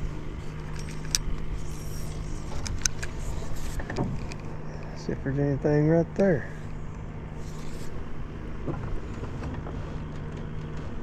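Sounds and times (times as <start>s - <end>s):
small electric motor humming: 0.0s - 4.4s
fishing reel clicks: 0.6s - 3.2s.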